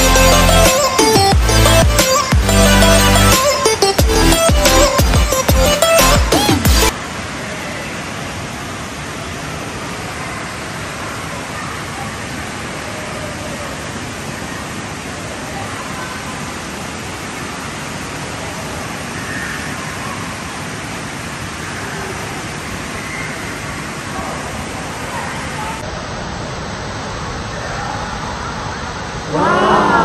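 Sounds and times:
faint distant voices: 7.2 - 26.3.

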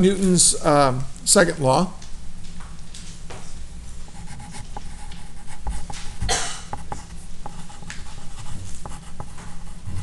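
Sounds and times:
pen scratching on paper: 4.2 - 10.0.

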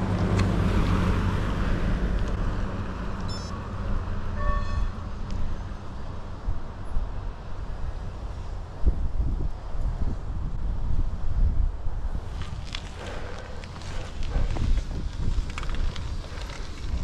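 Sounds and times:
high squeak-like call: 4.4 - 5.0
wind buffeting microphone: 5.6 - 17.0.

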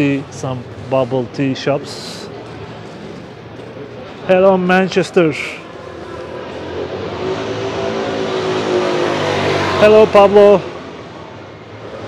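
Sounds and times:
motor scooter passing by: 5.6 - 12.0.

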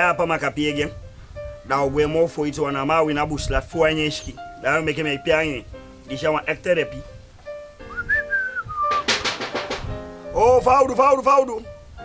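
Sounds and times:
soft background music: 0.0 - 12.0
whistled note gliding in pitch: 7.9 - 9.1.

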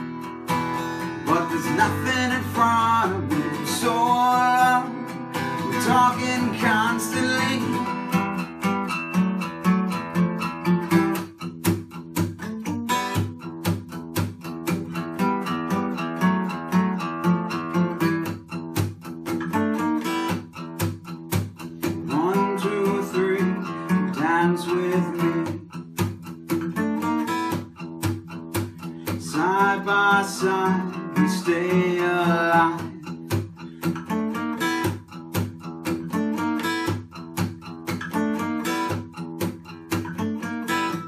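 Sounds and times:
acoustic guitar picking: 0.0 - 41.0
person singing: 0.8 - 8.0, 22.1 - 25.7, 29.1 - 33.1.

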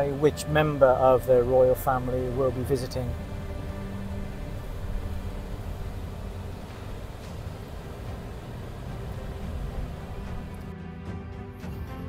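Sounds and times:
car driving rumble: 0.0 - 10.7
background music with held notes: 0.0 - 12.0.

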